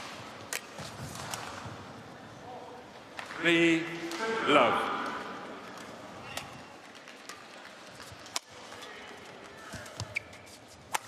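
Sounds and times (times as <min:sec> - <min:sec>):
shoe squeaks on court: 0:10.0 - 0:10.7.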